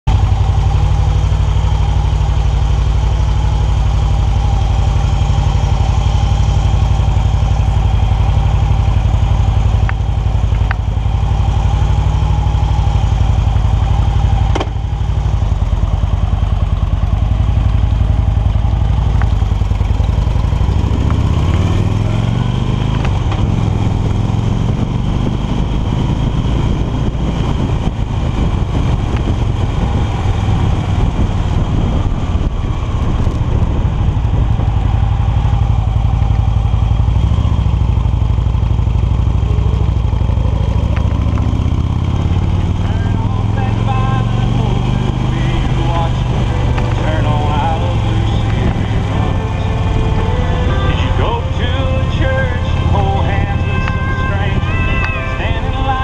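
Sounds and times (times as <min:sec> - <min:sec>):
motorcycle engine idling and revving: 0:00.0 - 0:56.0.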